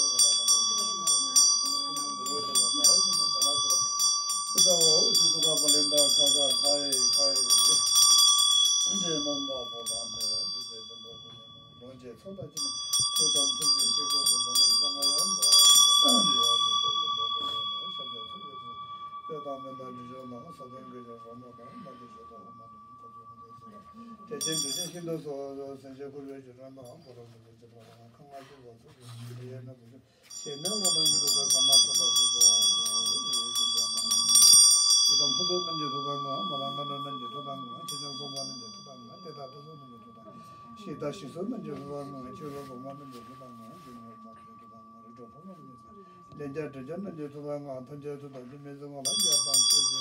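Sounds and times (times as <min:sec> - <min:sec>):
hand bell ringing: 0:00.0 - 0:25.4, 0:30.3 - 0:50.0.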